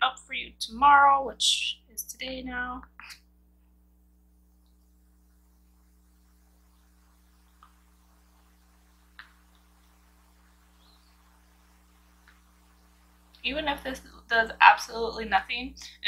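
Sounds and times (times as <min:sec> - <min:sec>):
steady low hum: 0:00.0 - 0:16.0
faint clicks: 0:07.5 - 0:07.8, 0:12.2 - 0:12.5.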